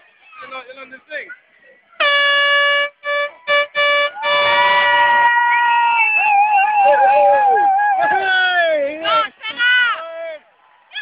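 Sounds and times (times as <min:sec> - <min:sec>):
horn blast on held note: 0:02.0 - 0:05.2.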